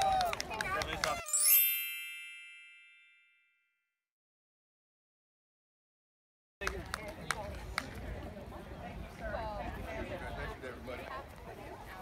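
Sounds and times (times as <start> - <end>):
bell-like chime: 1.2 - 3.9.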